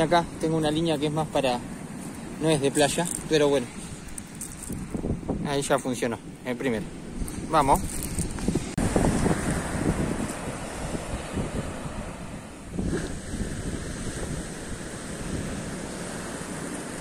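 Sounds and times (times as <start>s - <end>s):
wind rumbling on microphone: 0.0s - 17.0s
surf breaking on sand beach: 7.2s - 17.0s.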